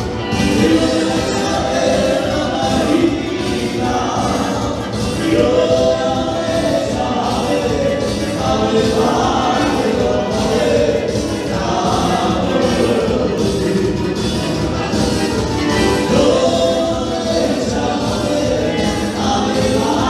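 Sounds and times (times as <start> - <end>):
dance music with group vocals: 0.0 - 20.0.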